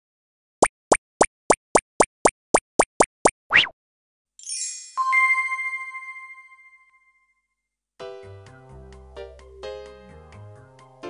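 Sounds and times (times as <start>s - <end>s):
cartoon plops: 0.6s - 3.8s.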